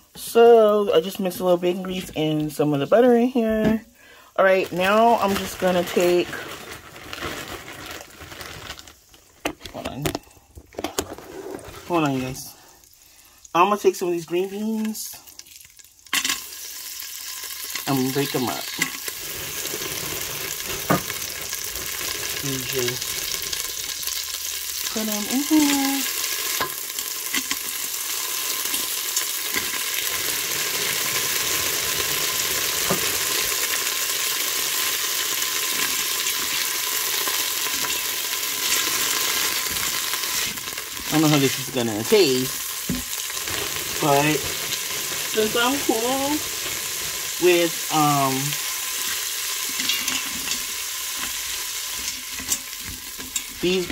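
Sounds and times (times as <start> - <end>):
beans sizzling in grease: 0.0 - 53.9
person speaking: 0.2 - 6.4, 11.8 - 12.7, 13.6 - 15.2, 17.8 - 18.8, 22.4 - 23.0, 24.9 - 26.1, 41.1 - 42.6, 44.0 - 44.5, 45.3 - 46.5, 47.4 - 48.6, 53.6 - 53.9.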